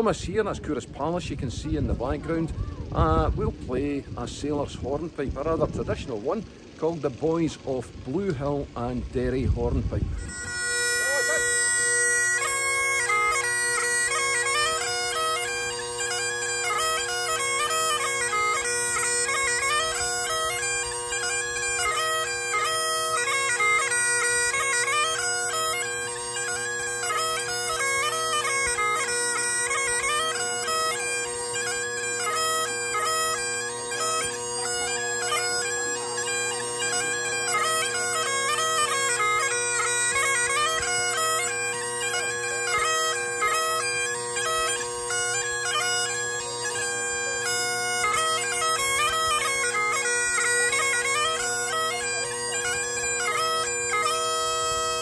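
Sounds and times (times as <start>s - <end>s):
bagpipe melody over drones: 0.0s - 55.0s.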